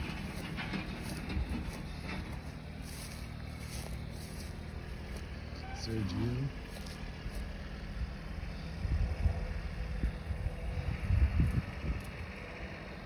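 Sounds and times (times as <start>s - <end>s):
low engine rumble: 0.0s - 13.0s.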